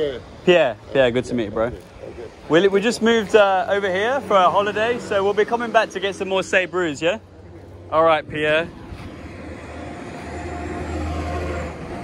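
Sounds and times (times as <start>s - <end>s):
road noise: 0.0s - 12.0s
vehicle engine passing: 2.3s - 12.0s.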